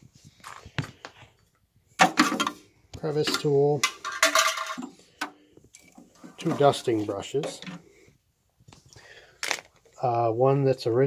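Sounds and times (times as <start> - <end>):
metallic clatter: 3.2 - 5.0.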